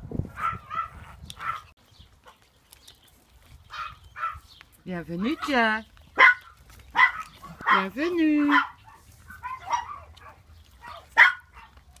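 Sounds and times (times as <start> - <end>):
small dog barking: 0.4 - 1.7, 3.7 - 4.5, 6.2 - 11.8.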